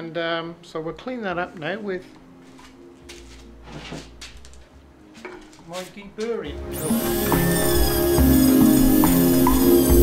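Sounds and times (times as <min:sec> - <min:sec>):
tools knocking and rustling: 0:05.2 - 0:05.8.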